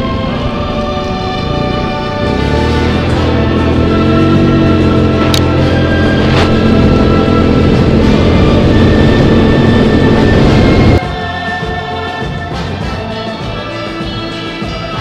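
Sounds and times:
atv engine running: 0:00.0 - 0:11.0
background music: 0:00.0 - 0:15.0.

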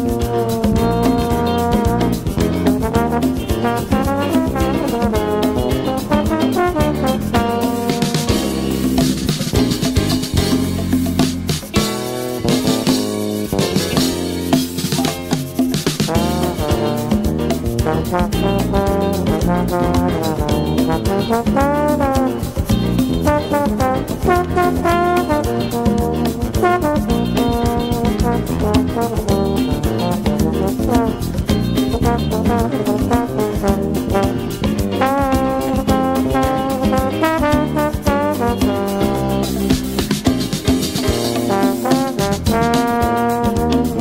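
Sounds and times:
bass and drums beat: 0:00.0 - 0:44.0
jazz trombone melody: 0:00.0 - 0:44.0.

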